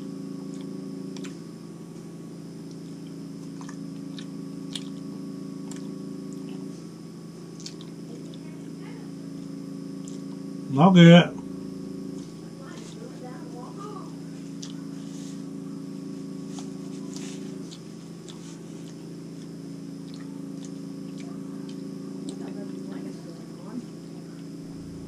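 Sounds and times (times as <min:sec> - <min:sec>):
appliance humming: 0:00.0 - 0:25.0.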